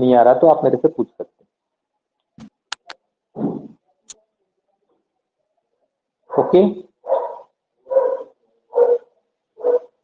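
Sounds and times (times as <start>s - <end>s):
dog barking: 6.3s - 10.0s.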